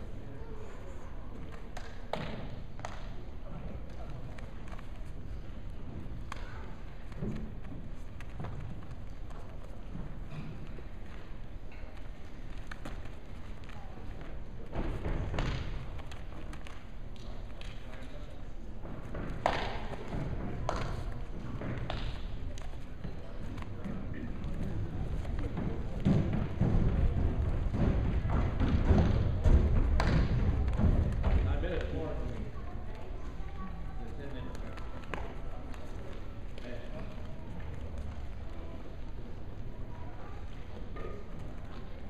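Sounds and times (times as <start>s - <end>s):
sharp slaps: 19.3s - 20.1s, 28.6s - 31.9s
bare feet stamping on mats: 23.5s - 31.5s.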